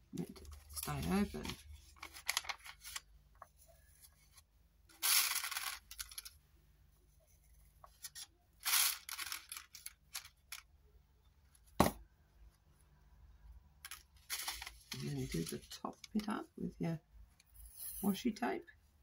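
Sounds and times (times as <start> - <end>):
paper rustling: 0.2 - 4.4, 7.8 - 10.4, 13.9 - 15.8.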